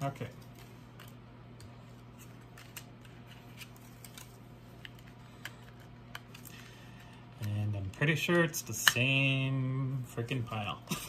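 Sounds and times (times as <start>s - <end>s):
steady low hum: 0.0s - 11.0s
cards clicking and sliding: 0.2s - 7.6s.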